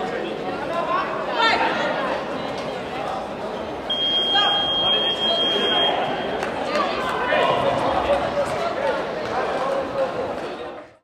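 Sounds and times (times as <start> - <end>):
crowd voices in a hall: 0.0 - 11.0.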